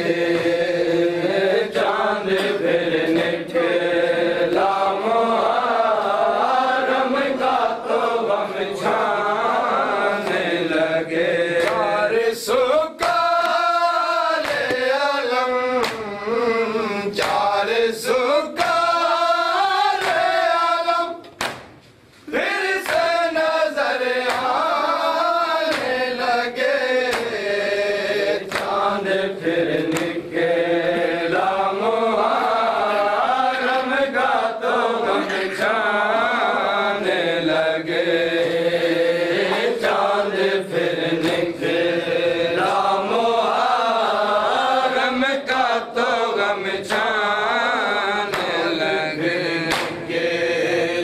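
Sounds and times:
men chanting a lament: 0.0s - 21.3s, 22.2s - 51.0s
hand slaps on chests: 1.7s - 3.5s, 10.2s - 10.6s, 11.6s - 12.0s, 13.0s - 13.7s, 14.4s - 15.0s, 15.8s - 16.2s, 17.2s - 17.6s, 18.6s - 19.0s, 19.8s - 20.5s, 21.2s - 22.0s, 22.8s - 23.4s, 24.1s - 24.8s, 25.6s - 26.2s, 27.0s - 27.5s, 28.4s - 28.9s, 29.7s - 30.3s, 38.9s - 40.0s, 41.0s - 41.8s, 46.9s - 47.2s, 48.2s - 48.8s, 49.7s - 50.2s.

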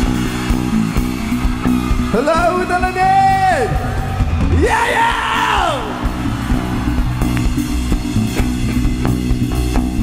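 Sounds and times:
rock band instruments: 0.0s - 10.0s
person yelling through pa: 4.6s - 5.9s.

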